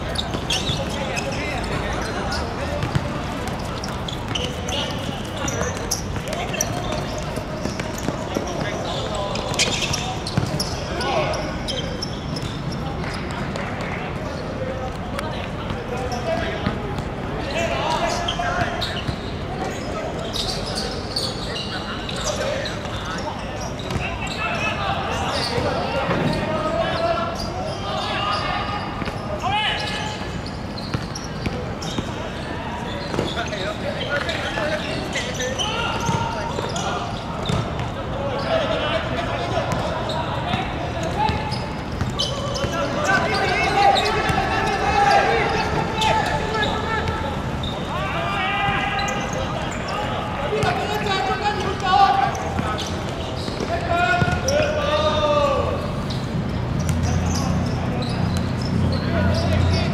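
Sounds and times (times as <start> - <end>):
players shouting: 15.4 - 59.9.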